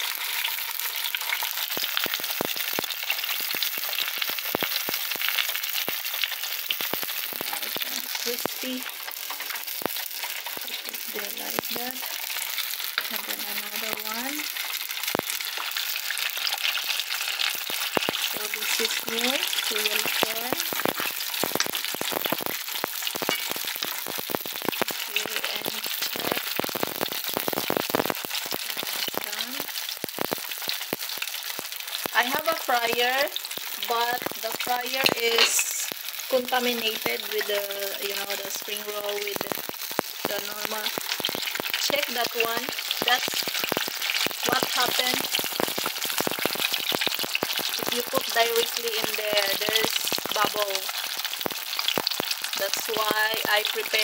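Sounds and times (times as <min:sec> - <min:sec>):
food sizzling and crackling in oil: 0:00.0 - 0:54.0.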